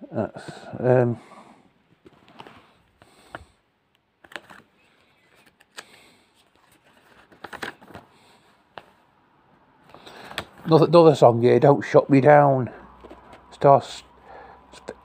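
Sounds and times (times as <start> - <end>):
booklet pages rustling: 1.9 - 3.4, 4.2 - 9.1
light clicks of handled booklet: 2.0 - 8.1.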